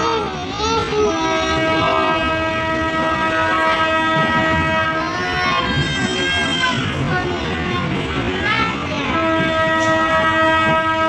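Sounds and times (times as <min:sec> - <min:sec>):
train rumbling on rails: 0:00.0 - 0:11.0
train horn blast: 0:01.3 - 0:05.7, 0:09.1 - 0:11.0.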